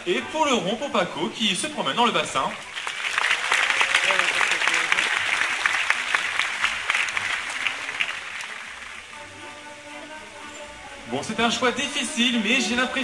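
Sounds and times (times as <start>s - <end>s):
large audience clapping: 2.3s - 9.2s.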